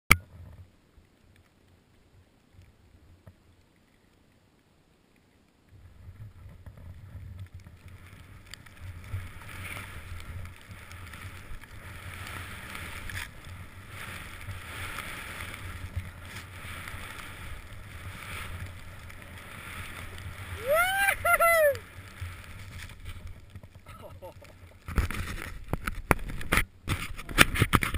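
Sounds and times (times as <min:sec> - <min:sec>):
skis swishing through powder: 0:05.9 - 0:27.9.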